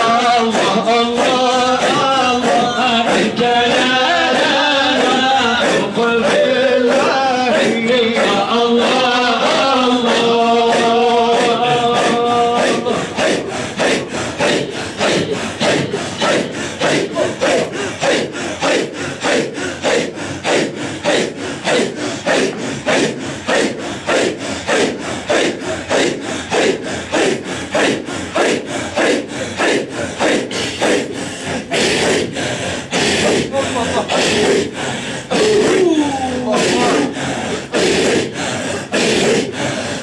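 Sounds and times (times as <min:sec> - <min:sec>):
men chanting breathy rhythmic chant: 0:00.0 - 0:40.0.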